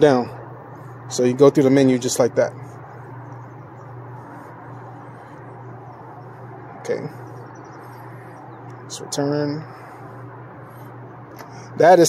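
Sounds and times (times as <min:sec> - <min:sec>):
vending machine humming: 0:00.0 - 0:12.0.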